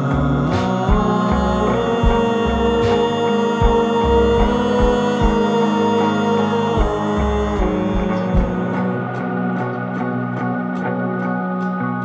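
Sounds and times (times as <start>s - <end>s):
band playing instrumental: 0.0s - 11.4s.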